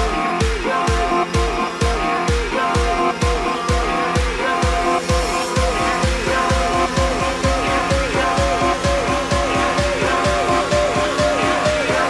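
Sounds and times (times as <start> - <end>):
upbeat song with kick-drum beat: 0.0 - 12.0.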